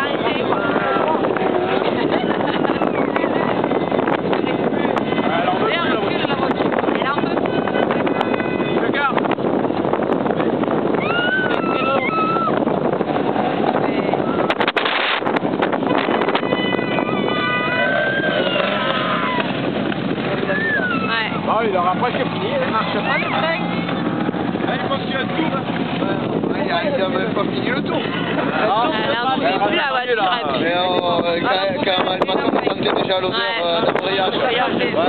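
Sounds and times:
car engines racing: 0.0 - 30.7
spectators talking: 0.0 - 35.0
wind buffeting microphone: 0.0 - 35.0.

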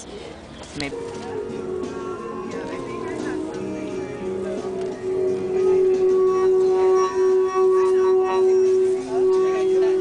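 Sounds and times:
singing bowl sustained tone: 3.0 - 10.0.

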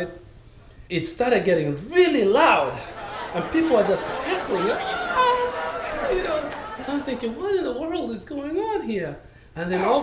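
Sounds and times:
man speaking: 1.0 - 10.0
man imitating crowd hubbub: 2.8 - 7.5.

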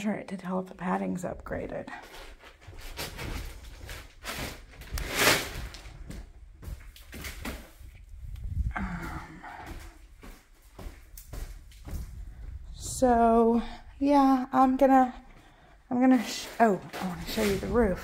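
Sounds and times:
footsteps on plastic sheeting: 2.0 - 8.3, 9.0 - 12.9
plastic sheeting rustling: 2.1 - 6.3.

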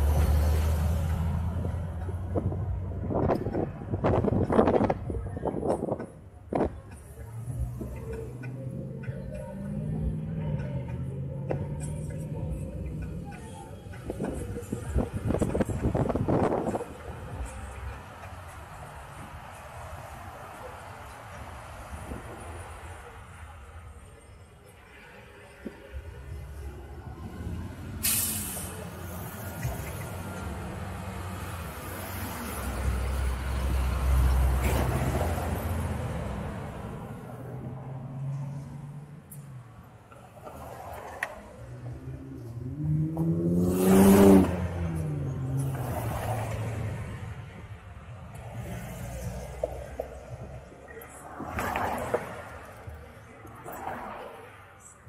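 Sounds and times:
heavy vehicle rumble: 0.0 - 55.0
road traffic passing: 0.0 - 55.0
short sharp hiss: 28.0 - 28.7
engine passing close: 40.4 - 47.6.

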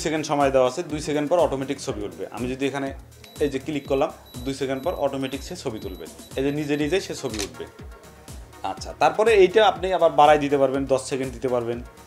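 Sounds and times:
man talking: 0.0 - 7.7
background music: 0.0 - 12.0
camera self-timer beeping: 3.2 - 7.5.

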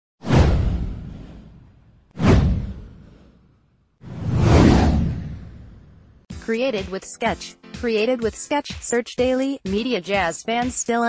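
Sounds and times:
deep boom: 0.2 - 3.3
whoosh sound effect: 0.2 - 3.4, 4.0 - 6.0.

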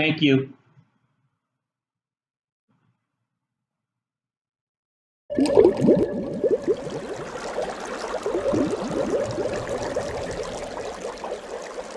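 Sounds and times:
underwater bubbles gurgling: 5.3 - 11.9.

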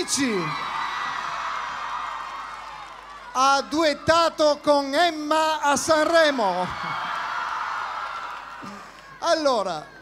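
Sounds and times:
large crowd cheering and screaming: 0.0 - 10.0.

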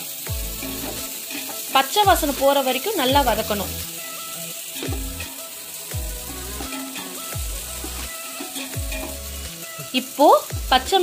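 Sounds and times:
background music: 0.0 - 11.0
vegetables sizzling in hot oil: 0.0 - 11.0
metal ladle stirring in pot: 0.5 - 2.6, 3.4 - 9.6.

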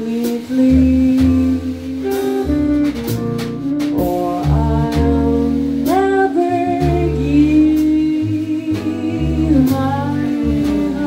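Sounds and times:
woman singing: 0.0 - 2.5, 3.9 - 11.0
double bass: 0.0 - 11.0.

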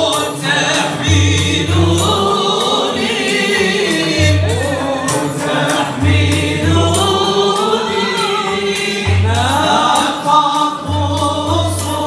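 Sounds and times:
men singing together: 0.0 - 12.0.

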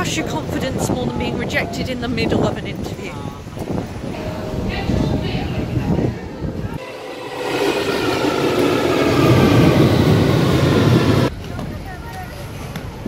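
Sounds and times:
street noise: 0.0 - 13.0
underground train rumbling: 3.7 - 12.0.

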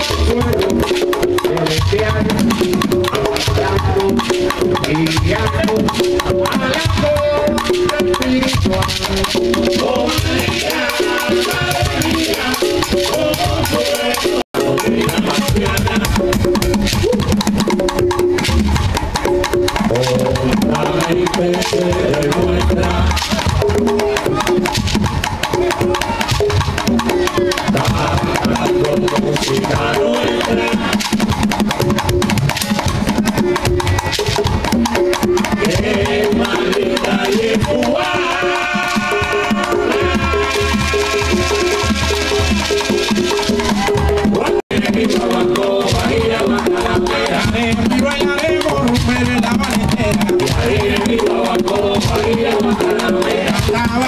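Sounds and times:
voices singing: 0.0 - 17.4, 19.8 - 24.8, 25.5 - 31.5, 35.0 - 54.0
conga and cajon drumming: 0.0 - 54.0
shaker rattling: 4.8 - 14.1.

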